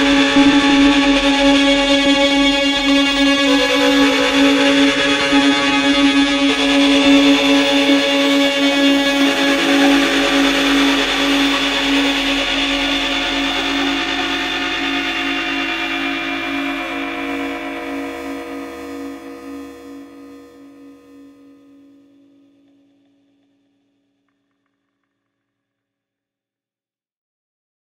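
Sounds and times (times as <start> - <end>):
post-rock band music: 0.0 - 20.9.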